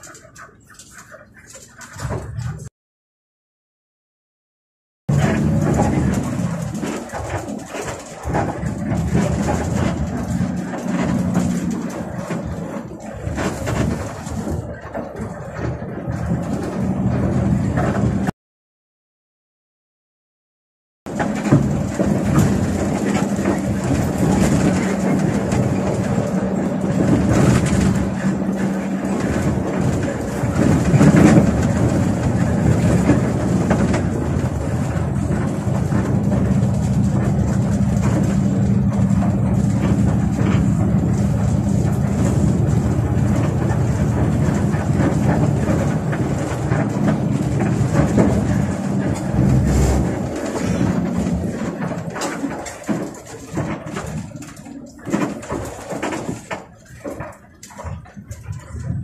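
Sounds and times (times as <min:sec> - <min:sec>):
road noise: 0:00.0 - 0:02.7, 0:05.1 - 0:18.3, 0:21.1 - 0:59.0
bus engine droning: 0:05.1 - 0:18.3, 0:21.1 - 0:59.0.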